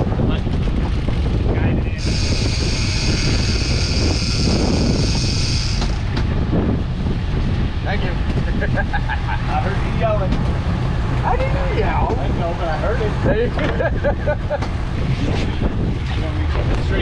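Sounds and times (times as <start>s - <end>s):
boat engine rumbling: 0.0s - 17.0s
wind on microphone: 0.0s - 17.0s
fishing reel whine: 2.0s - 6.2s.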